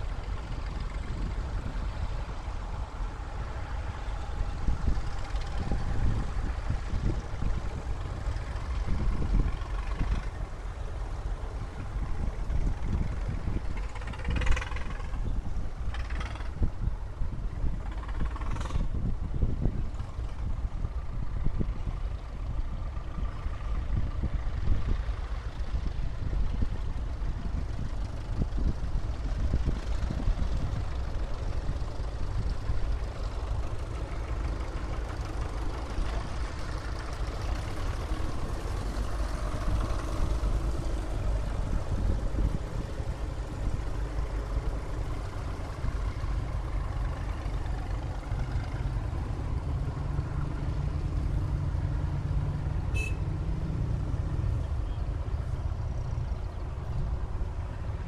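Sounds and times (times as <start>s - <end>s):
tractors driving past: 0.0s - 58.0s.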